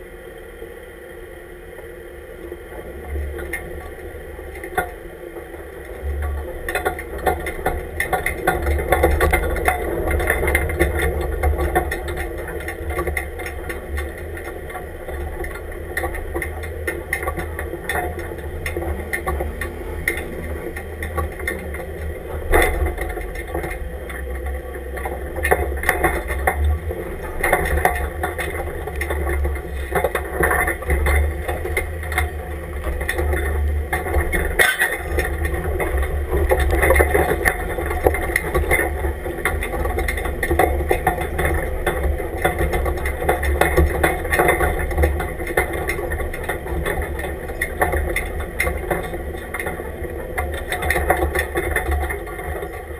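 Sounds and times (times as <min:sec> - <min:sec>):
truck engine and drivetrain rumble: 0:00.0 - 0:52.9.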